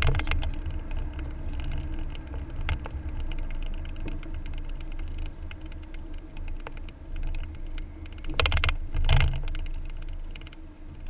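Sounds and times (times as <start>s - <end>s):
car engine and tyre rumble: 0.0s - 11.0s
light clicks and rattles: 0.0s - 11.0s.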